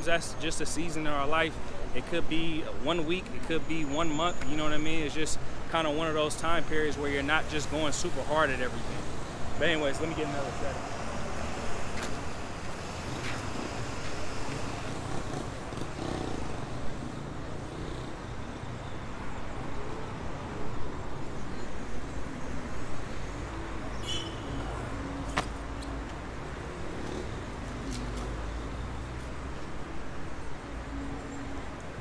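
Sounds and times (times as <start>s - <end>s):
road traffic rumble: 0.0s - 32.0s.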